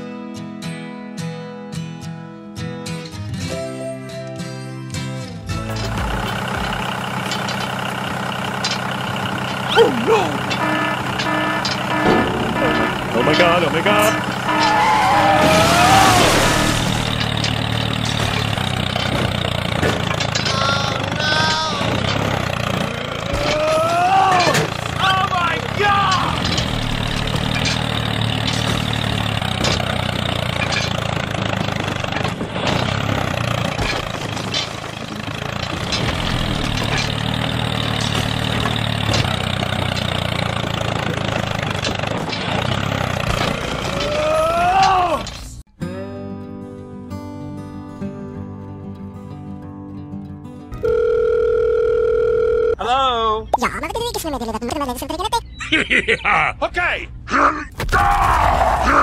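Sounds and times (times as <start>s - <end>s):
model tractor engine drone: 5.5s - 15.0s, 16.4s - 23.7s, 24.4s - 44.2s
person exclaiming: 9.7s - 10.5s, 23.4s - 26.4s, 44.0s - 45.3s, 52.8s - 55.5s.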